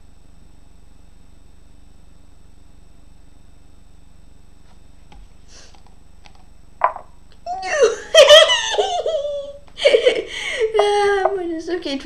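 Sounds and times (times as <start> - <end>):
boy giggling: 7.5 - 11.5.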